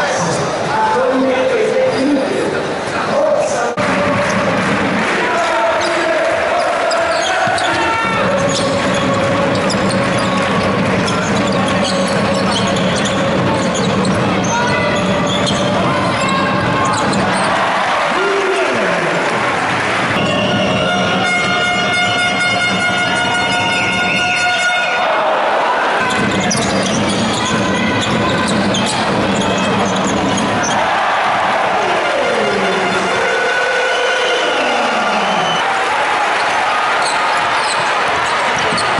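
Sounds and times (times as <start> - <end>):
arena crowd noise: 0.0 - 38.9
basketball bounces: 7.0 - 17.6, 26.1 - 30.8, 37.3 - 38.9
held horn-like tone: 20.2 - 25.0.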